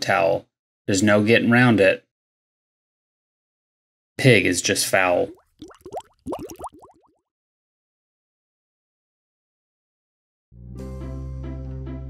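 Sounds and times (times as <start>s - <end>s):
short rising bloops: 5.2s - 7.1s.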